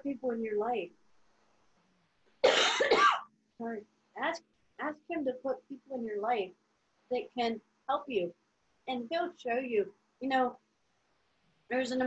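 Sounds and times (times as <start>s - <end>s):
woman coughing: 2.4s - 3.3s.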